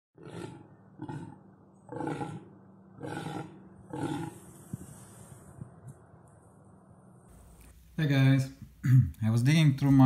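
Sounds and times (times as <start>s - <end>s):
deer groaning calls: 0.2s - 4.5s.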